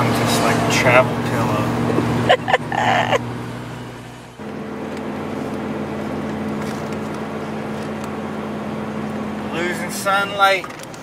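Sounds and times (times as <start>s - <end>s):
vehicle engine and road hum: 0.0s - 11.0s.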